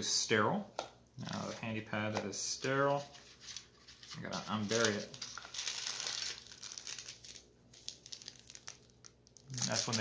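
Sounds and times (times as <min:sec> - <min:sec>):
paper packets crinkling: 0:03.4 - 0:10.0.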